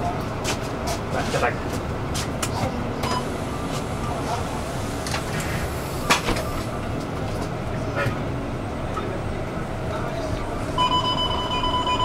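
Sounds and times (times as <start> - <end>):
bus engine rumble: 0.0 - 12.0
bus doors hissing shut: 3.0 - 6.8.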